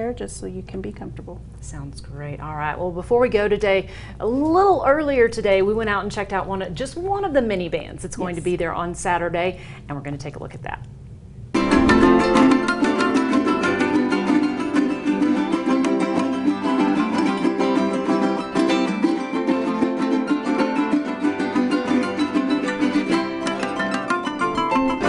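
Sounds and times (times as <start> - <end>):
harp: 11.6 - 25.0
small guitars strummed quickly: 11.6 - 25.0.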